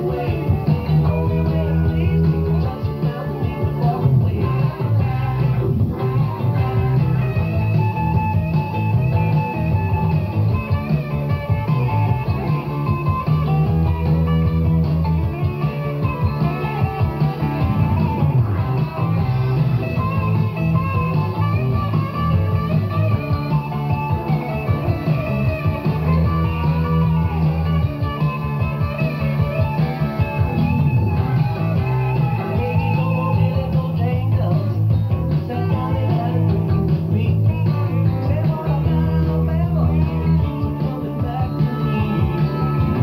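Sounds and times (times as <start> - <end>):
rock music with electric guitar: 0.0 - 43.0.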